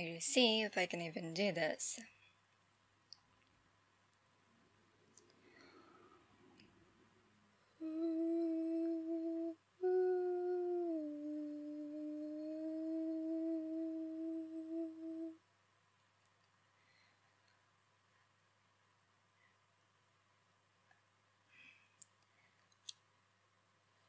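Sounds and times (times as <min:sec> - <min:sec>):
woman humming: 0:07.6 - 0:15.4.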